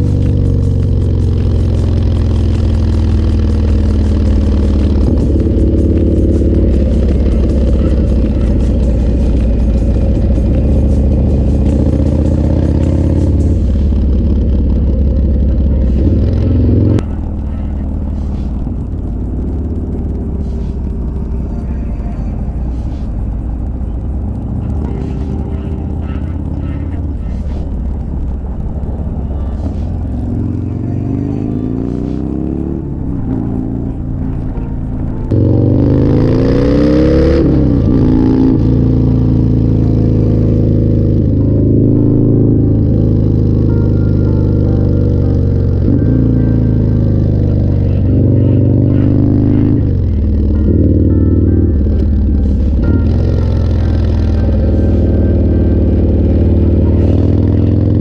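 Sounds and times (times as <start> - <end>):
motorcycle engine accelerating: 0.0 - 58.0.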